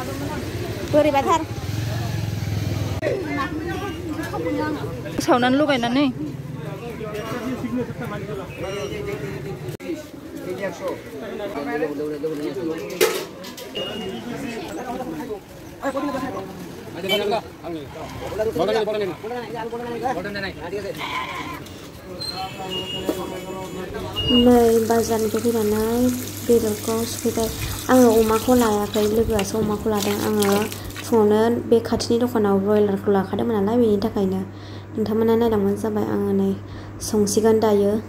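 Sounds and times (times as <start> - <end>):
street noise: 0.0 - 38.0
people talking: 22.1 - 38.0.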